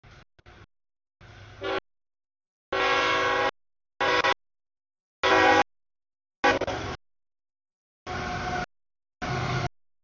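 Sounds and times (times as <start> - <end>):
locomotive air horn blasts: 1.6 - 1.9, 2.7 - 4.4, 5.2 - 5.7, 6.4 - 7.0, 8.0 - 9.7.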